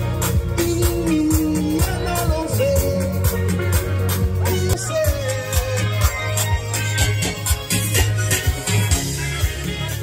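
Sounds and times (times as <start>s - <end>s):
person singing: 0.0s - 3.8s, 4.4s - 10.0s
bass line: 0.0s - 10.0s
live band music: 0.0s - 10.0s.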